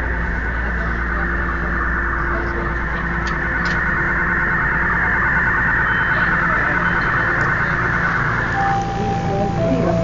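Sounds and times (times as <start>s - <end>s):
low hum: 0.0s - 10.0s
steady electronic tone: 0.0s - 10.0s.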